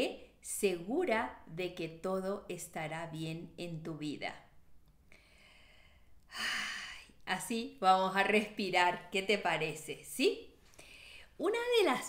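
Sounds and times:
woman breathing: 5.0 - 7.2, 10.6 - 11.4.

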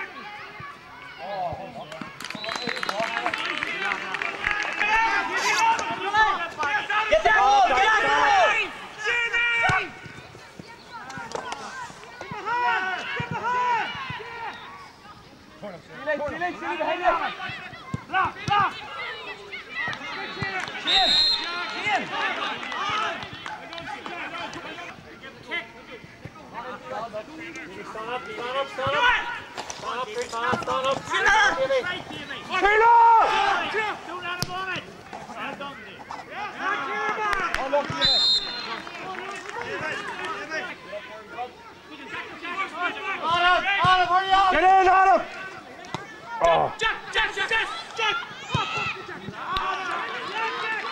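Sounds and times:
players and spectators shouting: 0.0 - 50.9
referee whistle blast: 20.1 - 21.9, 37.9 - 38.8
men shouting: 30.8 - 34.3.

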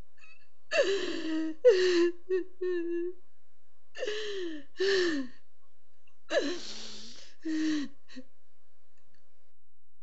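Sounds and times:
woman sobbing: 0.2 - 3.2, 4.0 - 5.3, 6.3 - 8.3.

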